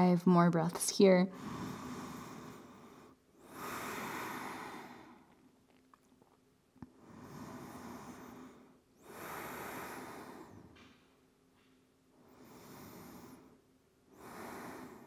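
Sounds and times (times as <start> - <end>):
woman breathing slowly: 1.3 - 15.0.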